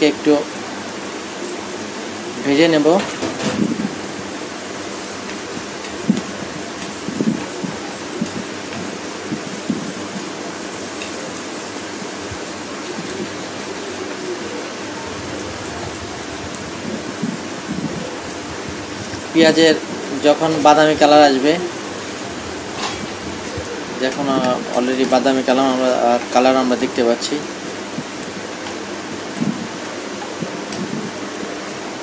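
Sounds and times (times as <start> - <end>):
onions sizzling in oil: 0.0 - 32.0.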